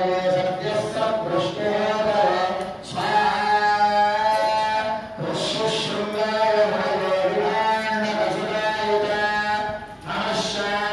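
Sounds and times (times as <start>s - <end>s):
men chanting together: 0.0s - 10.9s.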